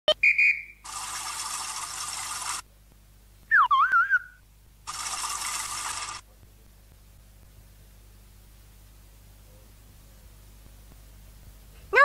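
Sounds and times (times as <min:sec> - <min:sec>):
sliding wobbling whistle: 0:03.5 - 0:04.4.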